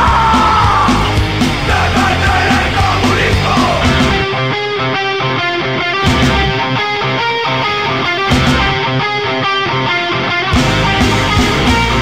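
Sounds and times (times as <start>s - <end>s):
bass: 0.0s - 4.4s, 6.0s - 6.8s, 8.3s - 9.0s, 10.5s - 12.0s
electric guitars playing chords: 0.0s - 12.0s.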